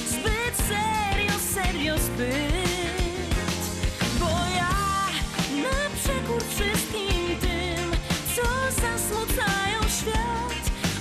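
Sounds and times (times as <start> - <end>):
drum beat: 0.0 - 8.5
bass: 0.0 - 11.0
electric guitar: 0.0 - 11.0
woman singing: 0.0 - 11.0.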